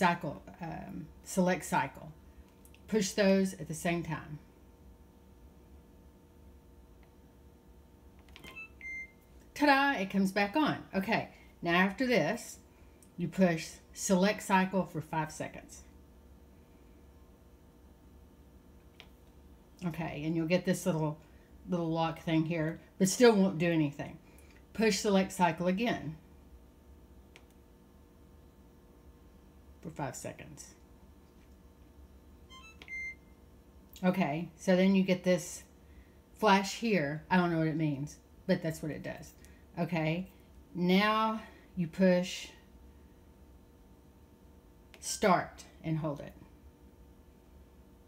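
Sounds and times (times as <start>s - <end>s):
low room hum: 0.0s - 48.0s
dishwasher control panel beeps: 8.4s - 9.2s, 32.5s - 33.2s.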